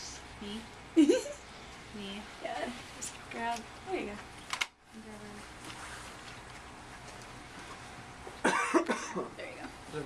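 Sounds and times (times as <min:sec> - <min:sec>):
person coughing: 0:08.4 - 0:09.3.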